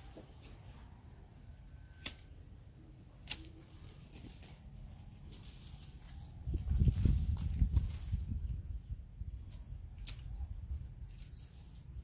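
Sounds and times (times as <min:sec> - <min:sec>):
faint outdoor background: 0:00.0 - 0:12.0.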